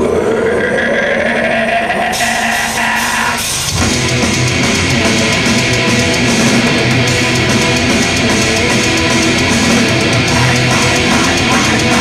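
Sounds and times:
low drone: 0:00.0 - 0:12.0
distorted guitar note bending upward: 0:00.6 - 0:12.0.

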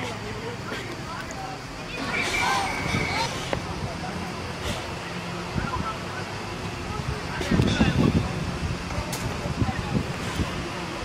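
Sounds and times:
distant shouts of young players: 0:01.9 - 0:03.3.

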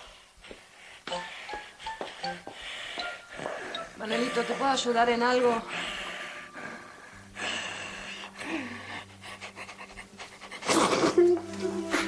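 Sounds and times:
soft background music: 0:00.8 - 0:12.0.

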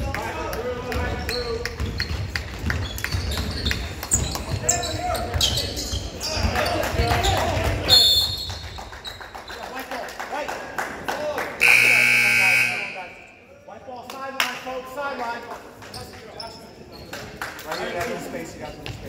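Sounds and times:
voices around court: 0:00.0 - 0:19.0
sneaker squeaks on hardwood floor: 0:01.2 - 0:06.8, 0:07.9 - 0:09.6, 0:15.9 - 0:17.1
referee's whistle: 0:07.9 - 0:08.7, 0:11.6 - 0:13.4
scoreboard buzzer: 0:11.6 - 0:13.3.

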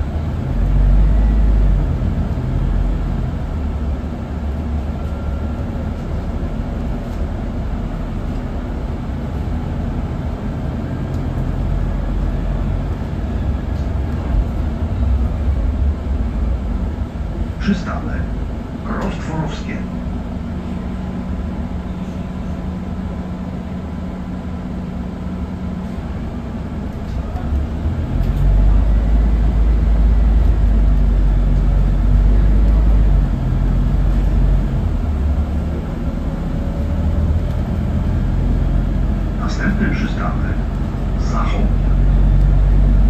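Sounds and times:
bus engine idling and revving: 0:00.0 - 0:43.0.

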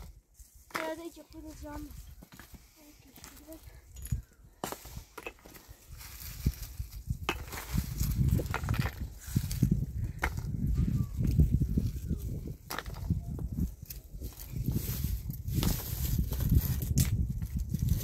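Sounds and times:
stones and gravel scraping: 0:00.6 - 0:10.5
soft voice: 0:10.7 - 0:12.3.

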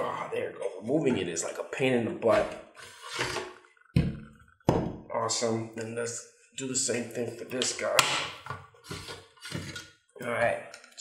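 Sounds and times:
plastic tray scraping and rattling: 0:02.8 - 0:03.5, 0:08.8 - 0:09.8.

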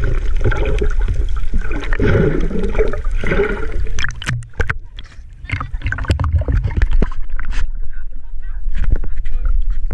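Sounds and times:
low rumble of moving water: 0:00.0 - 0:09.9
water splashing against camera: 0:00.0 - 0:09.9.

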